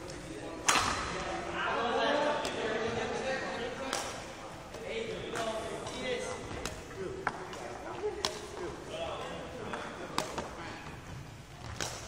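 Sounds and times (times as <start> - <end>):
racket striking shuttlecock: 6.6 - 8.6, 10.1 - 10.5, 11.7 - 12.0.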